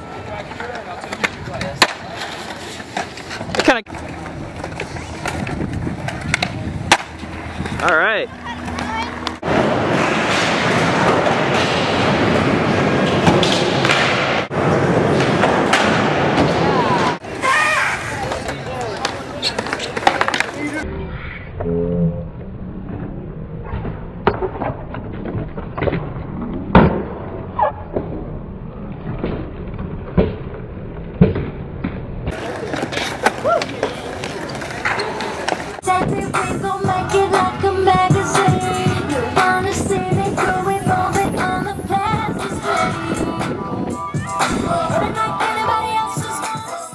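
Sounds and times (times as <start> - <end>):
skateboard wheels rolling: 0.0 - 20.8, 22.8 - 46.9
skateboard clacks: 0.1 - 8.0, 18.2 - 20.8.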